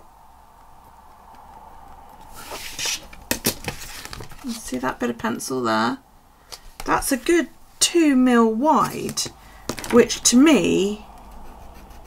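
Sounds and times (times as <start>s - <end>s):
plastic scraping across paper: 2.2s - 4.8s.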